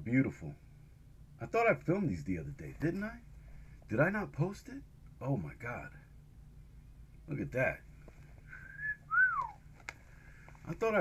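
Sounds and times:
man whistling two notes: 8.6 - 9.6.

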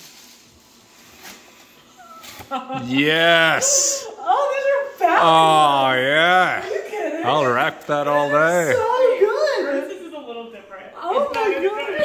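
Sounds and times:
paper gift bag rustling: 0.0 - 2.5
person shouting excitedly: 2.8 - 4.1, 5.1 - 6.6.

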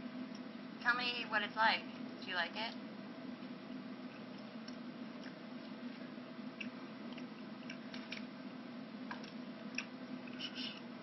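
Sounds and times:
steady low hum: 0.0 - 11.0
person chewing: 4.1 - 8.2.

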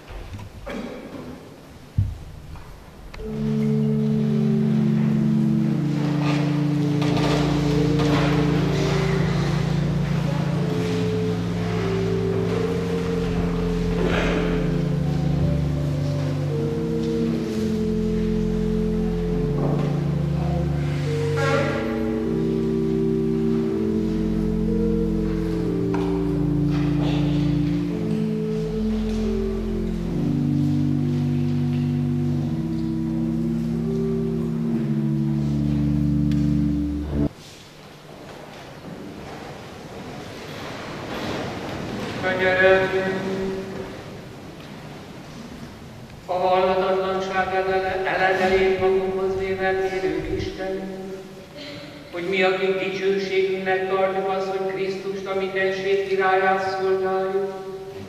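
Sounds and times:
church organ chords: 1.8 - 37.6, 41.2 - 58.0.

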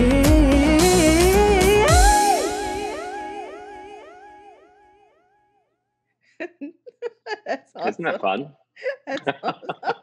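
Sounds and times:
pop song held note: 7.8 - 8.4
bursts of laughter: 9.1 - 10.0.

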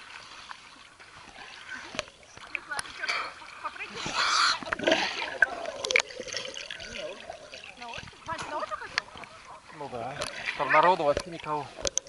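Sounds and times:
water splashing and sloshing: 0.0 - 12.0.

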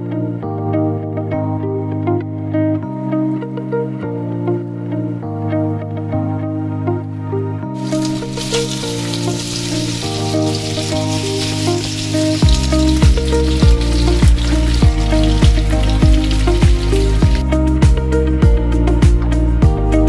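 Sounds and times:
sausage sizzling in a skillet: 7.8 - 17.4
background music with bass beat: 12.4 - 20.0.

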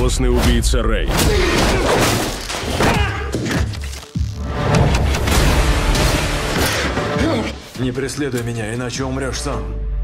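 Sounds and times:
action trailer music: 0.0 - 10.0.

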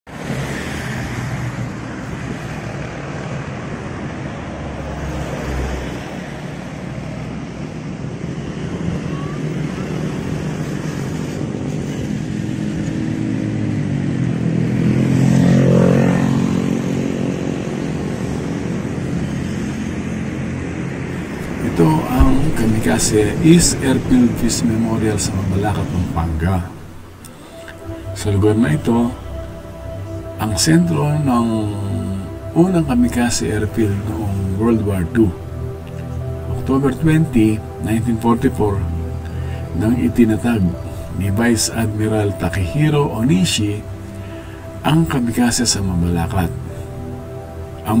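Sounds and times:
roadside traffic noise: 0.1 - 48.0
vehicle engine passing by: 0.1 - 48.0.

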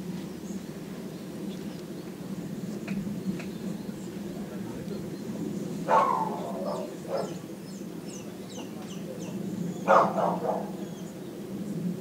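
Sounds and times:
steady low hum: 0.0 - 12.0
small birds chirping: 0.2 - 11.9.

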